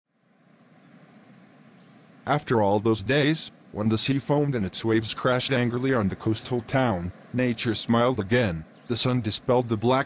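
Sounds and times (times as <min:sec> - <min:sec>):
faint background hiss: 0:00.1 - 0:10.0
thin steady tone: 0:00.1 - 0:10.0.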